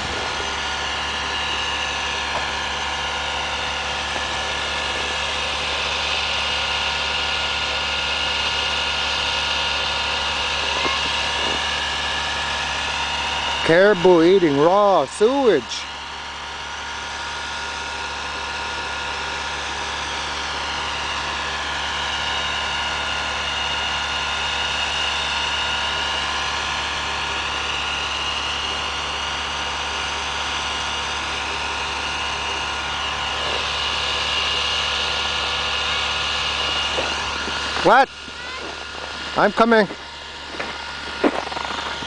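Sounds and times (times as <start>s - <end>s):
engine idling inside cab: 0.0s - 42.0s.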